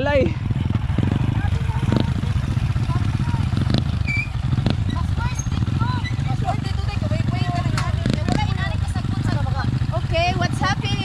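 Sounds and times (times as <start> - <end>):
motorcycle engines running: 0.0 - 11.0
people talking: 1.0 - 3.7, 4.9 - 11.0.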